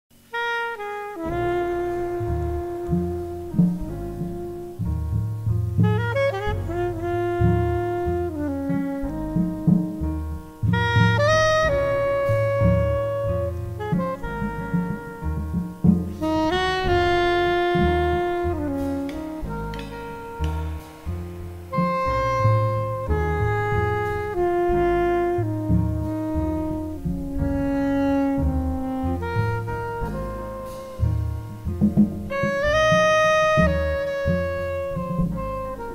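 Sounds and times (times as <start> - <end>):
double bass: 0.1 - 35.9
piano: 0.1 - 35.9
soprano saxophone melody: 0.2 - 35.9.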